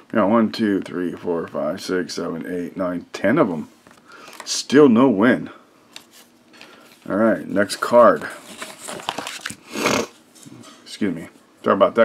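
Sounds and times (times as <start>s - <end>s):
man speaking: 7.1s - 8.4s, 10.9s - 12.0s.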